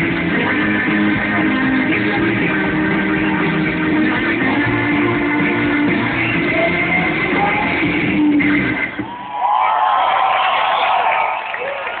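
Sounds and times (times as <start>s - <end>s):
live rock band: 0.0s - 9.2s
crowd noise: 0.0s - 12.0s.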